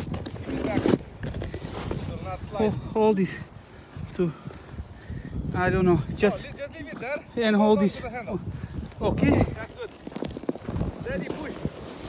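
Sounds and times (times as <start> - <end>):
crunching in packed snow: 0.0 - 2.7, 8.7 - 12.0.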